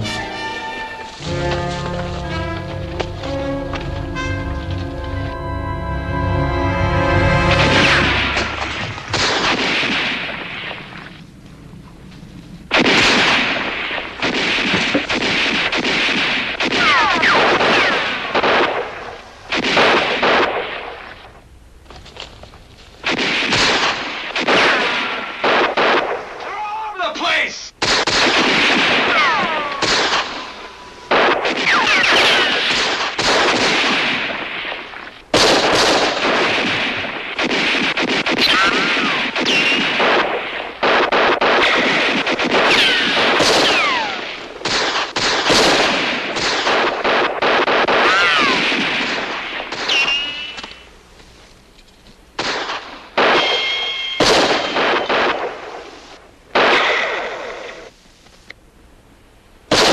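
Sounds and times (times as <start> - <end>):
gunfire bursts: 7.6 - 11.1, 12.7 - 21.2, 23.0 - 26.4, 27.8 - 50.8, 52.4 - 57.9
falling ricochet whines: 27.9 - 34.2, 38.3 - 40.2, 42.6 - 46.6, 47.8 - 50.7.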